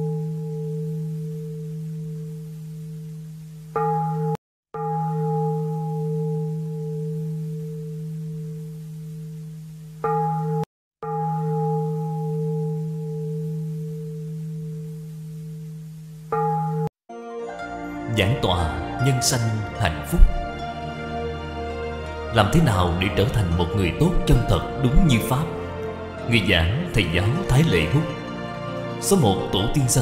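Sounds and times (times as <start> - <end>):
deep bell ringing: 0.0 - 30.0.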